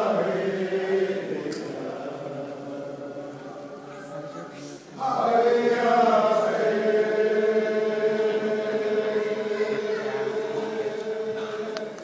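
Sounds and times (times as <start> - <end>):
group chanting a song: 0.0 - 4.2, 4.9 - 12.0.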